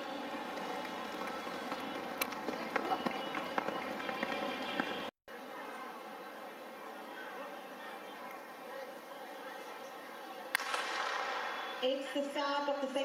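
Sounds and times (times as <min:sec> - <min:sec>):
distant voices: 0:00.0 - 0:12.2.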